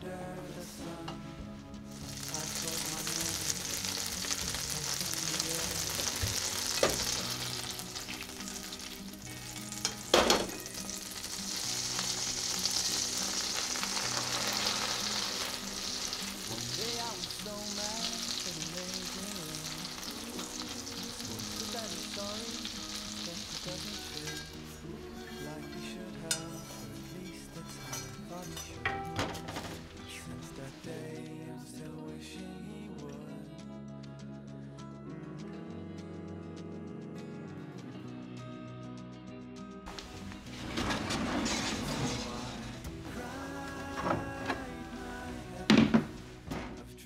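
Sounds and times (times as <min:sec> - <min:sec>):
butter sizzling in frying pan: 0:01.9 - 0:28.7, 0:39.9 - 0:40.9.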